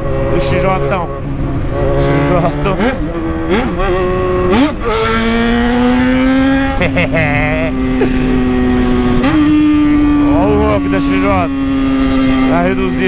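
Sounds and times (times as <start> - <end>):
motorcycle engine accelerating: 0.0 - 13.0.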